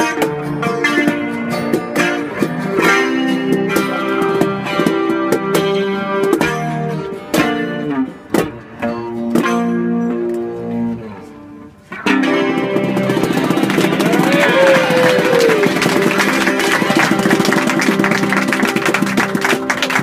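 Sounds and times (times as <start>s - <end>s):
acoustic guitar strummed chords: 0.0s - 20.0s
electric guitar strummed chords: 0.0s - 20.0s.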